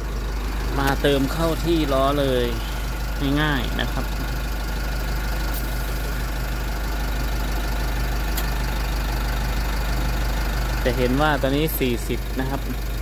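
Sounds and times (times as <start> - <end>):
air hissing: 5.5 - 6.3.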